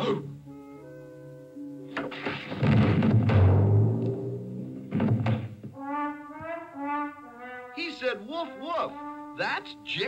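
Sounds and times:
heavy knocking thumps: 0:02.3 - 0:03.8, 0:04.9 - 0:05.8.

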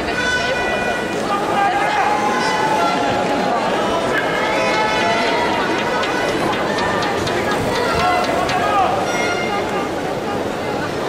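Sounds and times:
crowd voices in a large hall: 0:00.0 - 0:11.0.

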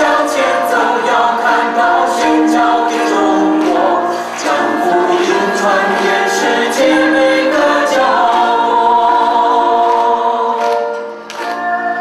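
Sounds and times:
women's choir singing a hymn: 0:00.0 - 0:12.0.

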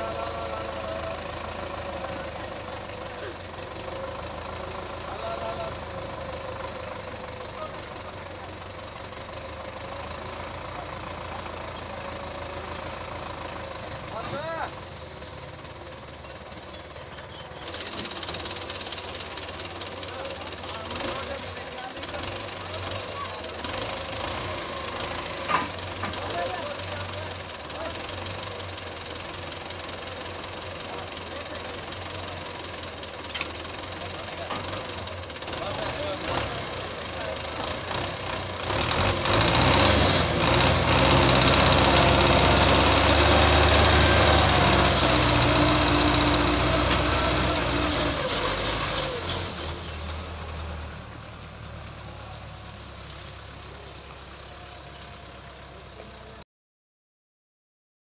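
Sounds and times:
tractor diesel engine under load: 0:00.0 - 0:56.4.

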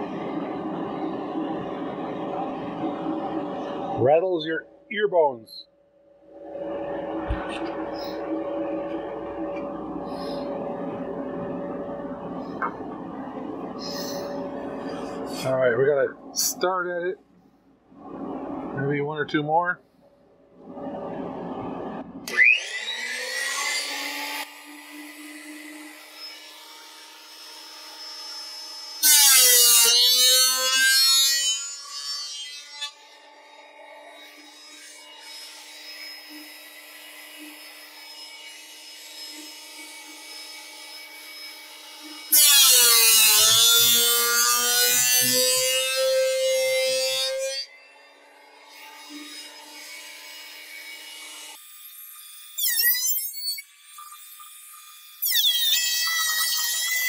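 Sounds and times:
planer cutting boards: 0:07.0 - 0:10.5, 0:22.3 - 0:33.6, 0:34.2 - 0:47.6.

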